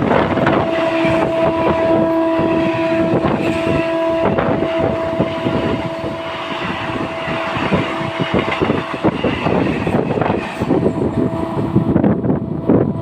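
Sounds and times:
train wheels clattering on rails: 0.0 - 12.1
wind buffeting microphone: 0.0 - 13.0.

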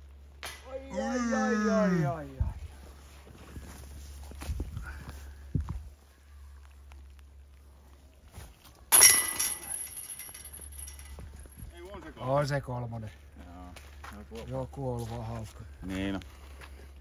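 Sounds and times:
footsteps on forest floor: 2.5 - 8.9, 13.1 - 17.0
disc striking metal chains: 8.9 - 11.3.

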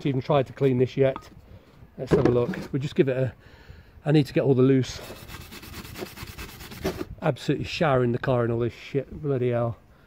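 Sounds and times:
wire brush scrubbing metal: 4.9 - 7.0.

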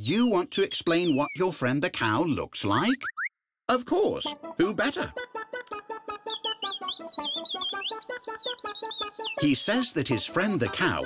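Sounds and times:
light music with plucked beat: 4.2 - 11.0
cartoon chick cheeping: 6.1 - 9.6.

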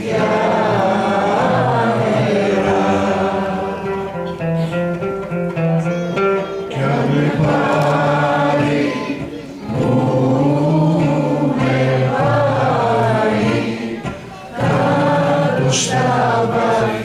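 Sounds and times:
acoustic guitar: 0.0 - 17.0
man singing: 6.7 - 17.0.

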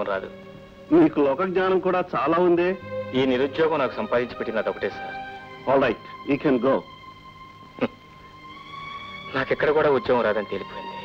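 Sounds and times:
man speaking: 0.0 - 6.9
faint background music: 0.0 - 11.0.

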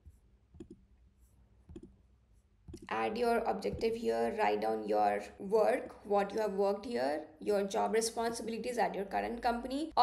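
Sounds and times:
woman speaking: 2.8 - 10.0.

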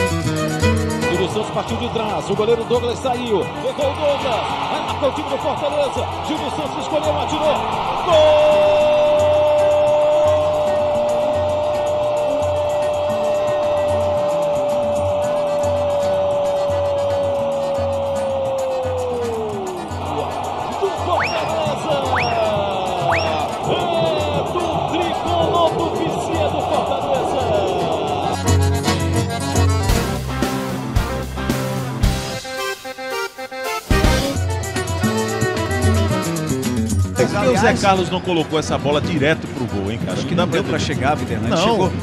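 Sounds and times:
background music with steady beat: 0.0 - 42.0.

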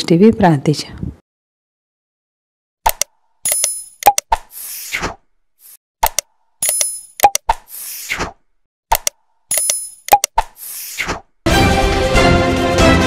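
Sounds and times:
sharp mouse clicks: 2.9 - 5.0, 6.0 - 8.3, 8.9 - 11.1.

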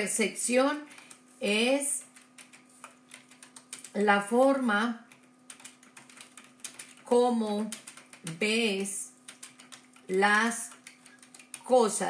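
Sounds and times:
faint steady hum: 0.0 - 12.0
computer keyboard typing: 1.9 - 4.3, 5.0 - 12.0.

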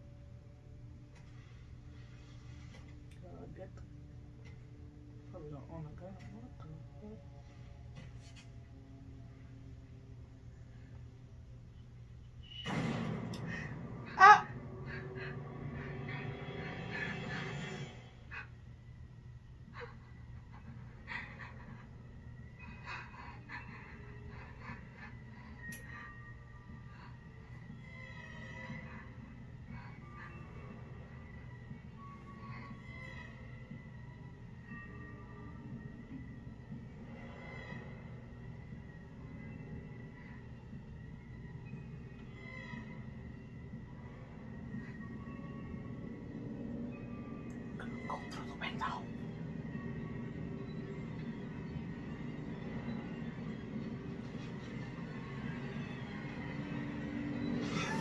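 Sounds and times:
low rumbling drone: 0.0 - 58.0
sharp musical hits: 12.5 - 18.1.

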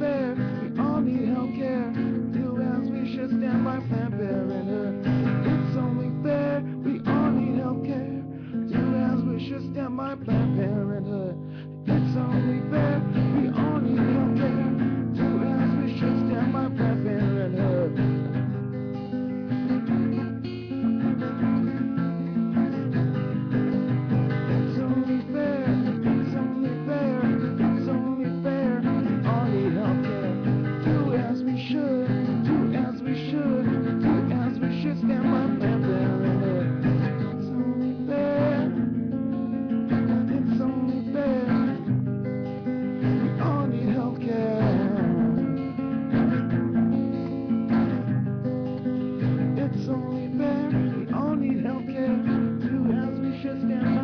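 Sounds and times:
man singing: 0.0 - 18.4, 22.6 - 41.9, 43.0 - 46.5, 49.2 - 54.0
acoustic guitar strumming chords: 0.0 - 54.0.

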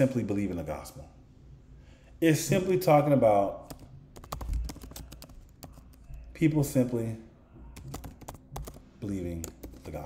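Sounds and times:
typing on computer keyboard: 3.7 - 6.2, 7.8 - 8.8, 9.4 - 10.0.

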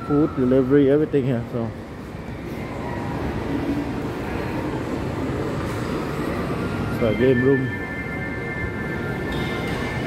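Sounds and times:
shopping mall background rumble: 0.0 - 10.0.

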